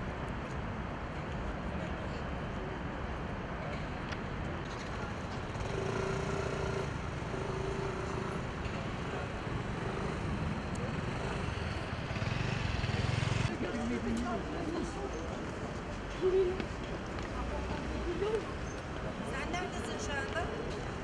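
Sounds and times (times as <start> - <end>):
traffic noise: 0.0 - 21.0
vehicle passing rumble: 5.0 - 13.6.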